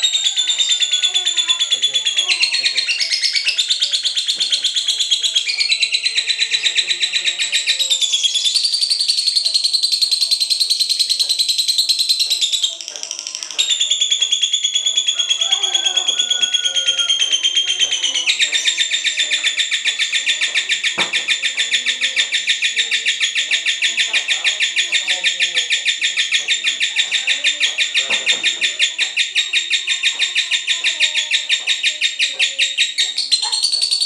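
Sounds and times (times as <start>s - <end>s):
lovebird chattering: 0.0s - 34.0s.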